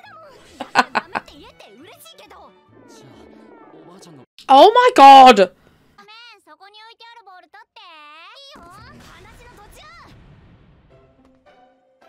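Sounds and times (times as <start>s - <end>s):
background music: 0.2s - 5.5s
cartoon dialogue: 4.5s - 5.5s.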